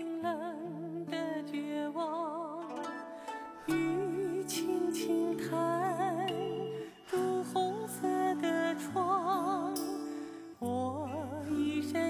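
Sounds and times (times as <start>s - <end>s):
plucked string accompaniment: 1.0s - 12.0s
high voice singing with vibrato: 3.6s - 12.0s.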